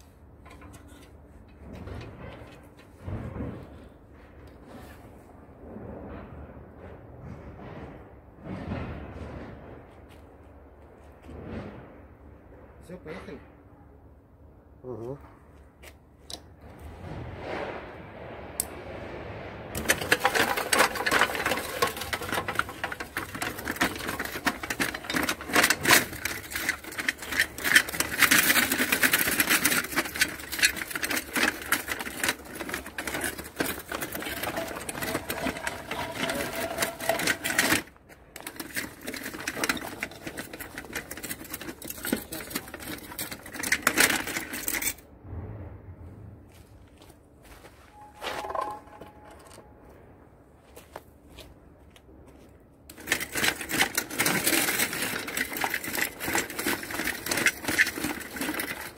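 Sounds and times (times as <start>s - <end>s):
track links clattering: 0.0s - 4.9s, 19.7s - 45.1s, 48.0s - 49.8s, 52.9s - 58.9s.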